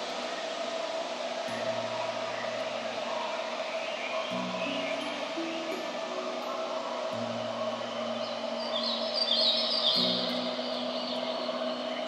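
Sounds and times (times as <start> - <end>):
soft low music notes: 0.0 - 12.0
steady ambient hiss: 0.0 - 12.0
small birds chirping: 1.4 - 12.0.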